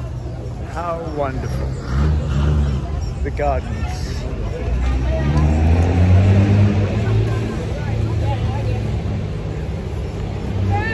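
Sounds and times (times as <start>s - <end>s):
faint voices: 0.0s - 10.9s.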